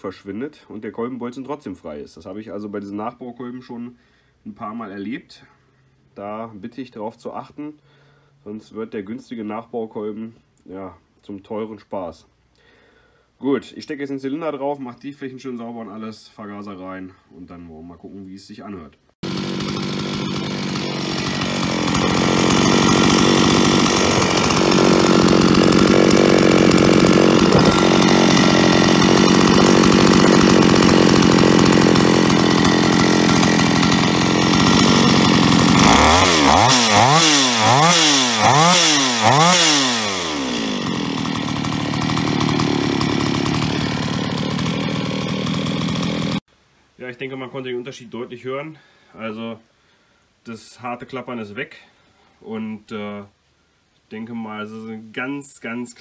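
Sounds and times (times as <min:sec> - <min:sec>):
chainsaw engine idling and revving: 0:19.2 - 0:46.4.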